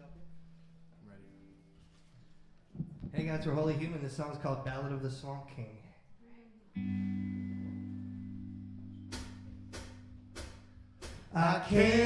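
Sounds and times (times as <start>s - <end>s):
guitar chord ringing: 6.8s - 10.9s
sharp percussive hits: 9.1s - 12.0s.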